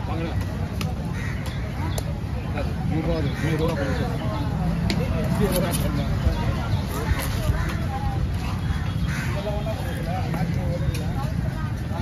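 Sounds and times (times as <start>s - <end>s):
people talking: 0.0s - 12.0s
crows cawing: 1.1s - 1.7s, 8.7s - 9.5s.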